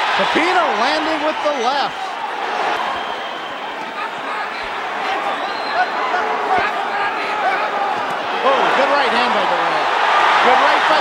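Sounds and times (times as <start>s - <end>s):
crowd hubbub: 0.0s - 11.0s
crowd shouts: 0.0s - 11.0s.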